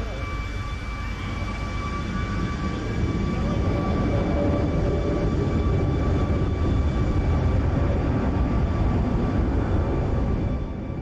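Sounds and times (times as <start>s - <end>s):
jet engines rumbling and whining: 0.0s - 11.0s.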